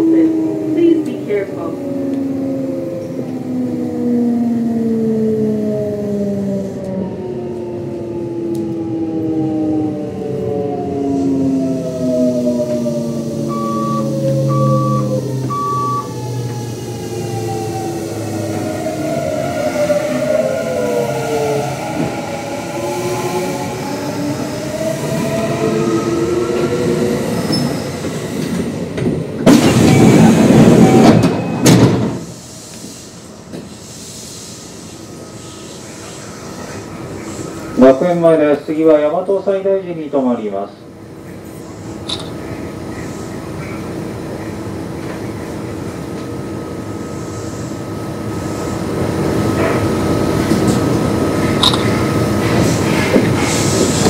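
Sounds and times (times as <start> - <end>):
train inverter tones falling: 13.4 - 16.6.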